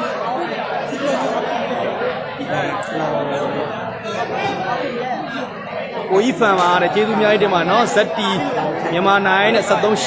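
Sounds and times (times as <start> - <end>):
men talking over one another: 0.0 - 10.0.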